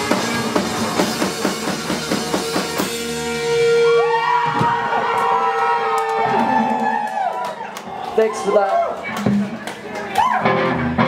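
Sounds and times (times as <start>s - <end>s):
drums hitting: 0.0s - 3.7s, 4.4s - 5.0s, 6.2s - 7.1s, 9.2s - 9.6s
electric guitars ringing: 0.0s - 4.5s
live rock band: 0.0s - 11.0s.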